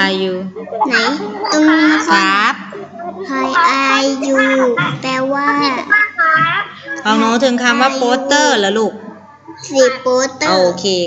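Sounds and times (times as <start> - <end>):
child chanting over video call: 3.2 - 7.0.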